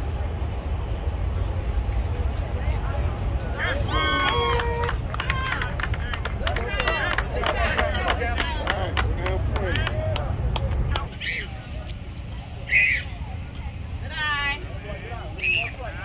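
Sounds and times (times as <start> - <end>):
chatter of voices: 1.7 - 16.0.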